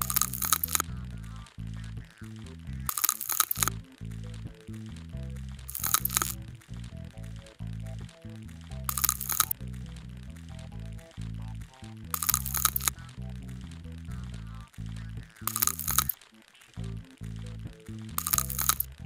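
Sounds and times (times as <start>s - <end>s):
background music with low bass: 0.0s - 19.0s
crackling scraping with scalpel: 0.0s - 19.0s.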